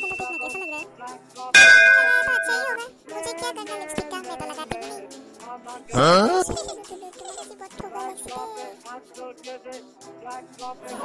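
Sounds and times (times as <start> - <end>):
metallic ding-clang: 1.6 - 2.8.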